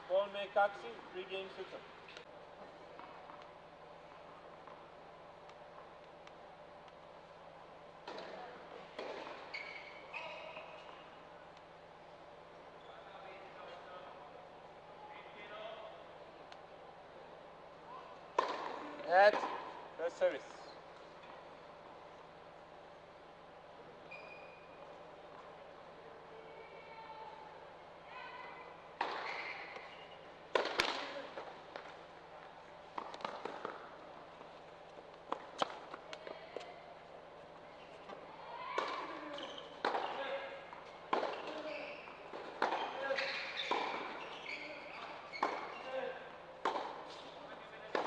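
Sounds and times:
racquets hitting tennis ball: 18.3s - 19.7s, 29.0s - 32.0s, 32.9s - 34.0s, 38.8s - 44.2s, 45.3s - 45.8s, 46.6s - 47.3s.

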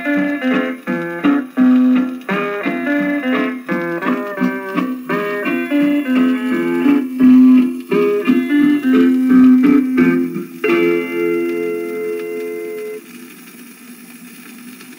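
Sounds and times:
record surface hiss: 0.0s - 14.9s
western swing band on phonograph: 0.0s - 14.9s.

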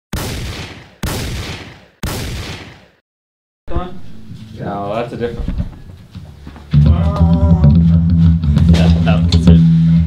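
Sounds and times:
shotgun blasts: 0.1s - 3.0s.

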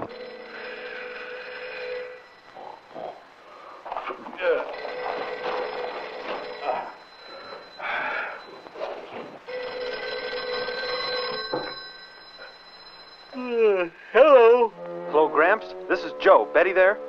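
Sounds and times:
telephone bell ringing: 0.0s - 2.9s, 4.6s - 14.2s.

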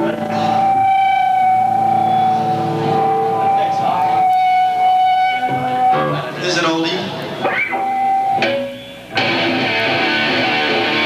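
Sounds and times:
guitar amplifier feedback tone: 0.0s - 11.0s.

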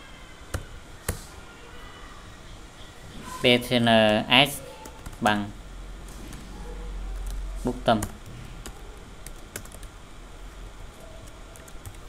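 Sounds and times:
faint low hum: 0.0s - 12.0s
computer keyboard keys clicking: 7.2s - 9.9s, 11.2s - 12.0s.

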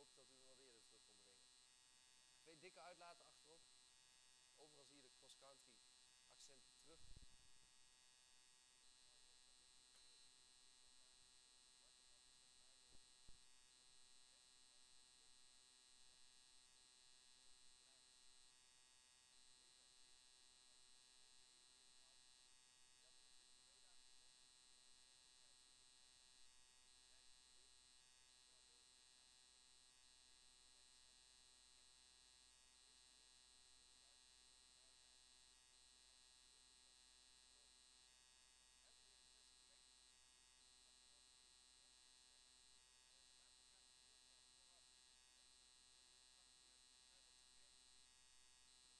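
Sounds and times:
faint electrical hum: 0.0s - 48.9s.

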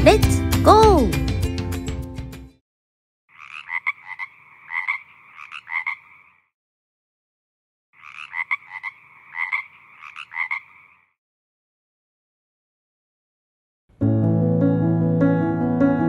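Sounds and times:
frog calls: 3.3s - 6.5s, 8.0s - 11.2s.

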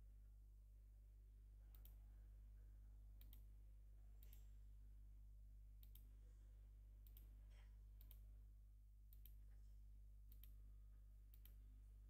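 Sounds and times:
low electrical hum: 0.0s - 12.0s
computer mouse clicks: 1.7s - 2.0s, 3.2s - 3.5s, 4.2s - 4.5s, 5.8s - 6.1s, 7.0s - 7.3s, 8.0s - 8.2s, 9.1s - 9.5s, 10.3s - 10.6s, 11.3s - 11.6s.

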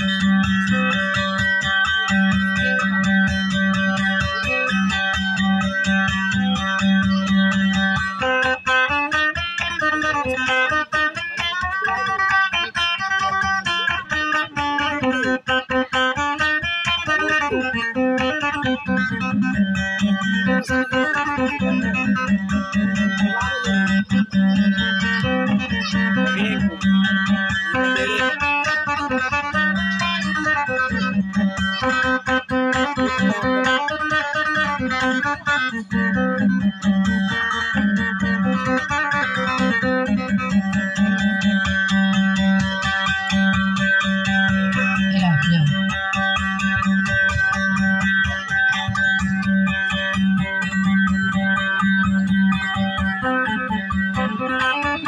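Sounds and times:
fast plucked guitar melody: 0.0s - 55.0s
repeated low guitar note: 0.0s - 55.0s.

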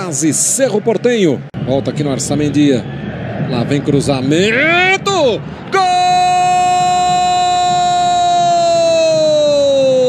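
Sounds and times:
commentator shouting goal: 4.4s - 10.0s.

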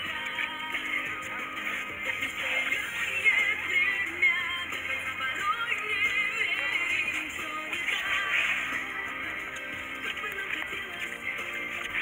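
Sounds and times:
dance music with singing: 0.0s - 12.0s.

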